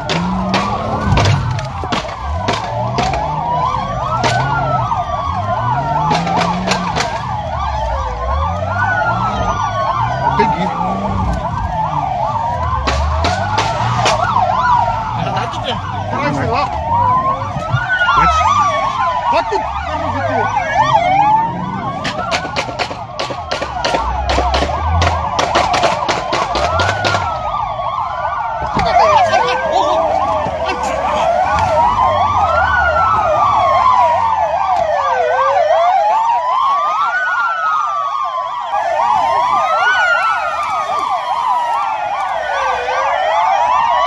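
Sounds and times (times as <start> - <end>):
rapid sharp cracks: 0.0 - 7.6, 12.7 - 14.4, 22.0 - 27.5
police sirens wailing and yelping: 0.0 - 44.0.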